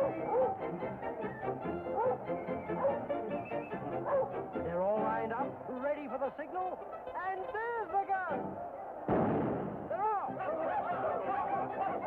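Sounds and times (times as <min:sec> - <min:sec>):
starting gun shot: 0:09.1 - 0:10.0.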